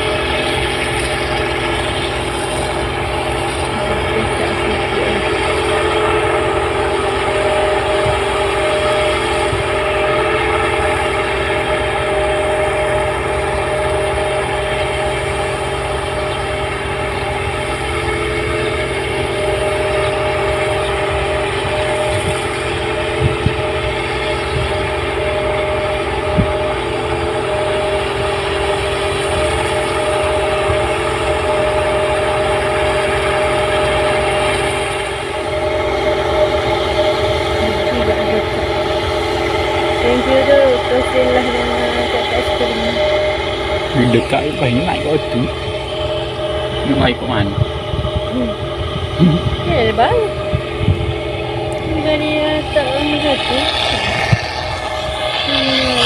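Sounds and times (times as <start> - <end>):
combine harvester engine drone: 0.0 - 56.0
threshing machinery whine: 0.0 - 56.0.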